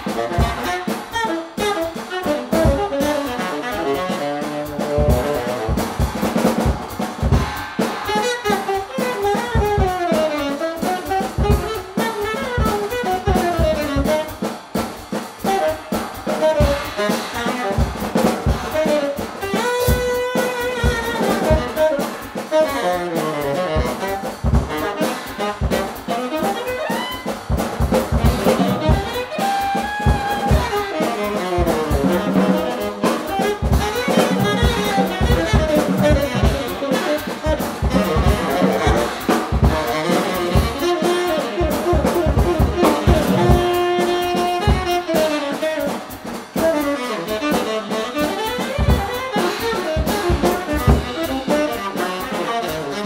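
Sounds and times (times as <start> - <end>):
drum kit with cymbals: 0.0 - 53.0
tenor saxophone improvising jazz: 0.0 - 53.0.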